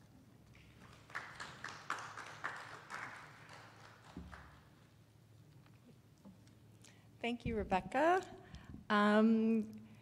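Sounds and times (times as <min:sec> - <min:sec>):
small audience clapping: 0:00.6 - 0:04.8.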